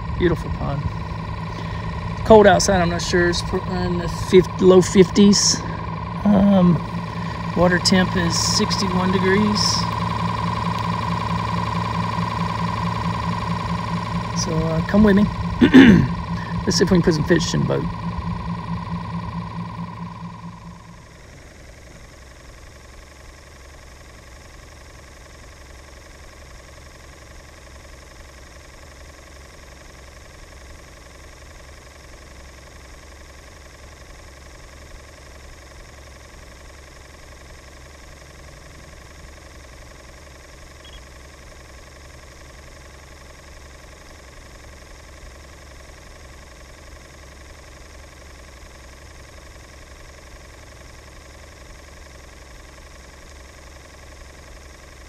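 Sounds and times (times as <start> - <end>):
boat motor humming: 0.0 - 22.1.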